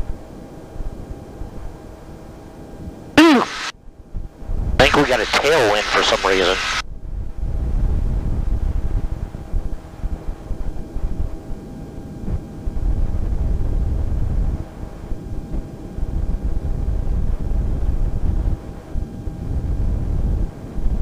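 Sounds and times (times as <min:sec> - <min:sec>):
wind buffeting microphone: 0:06.9 - 0:21.0.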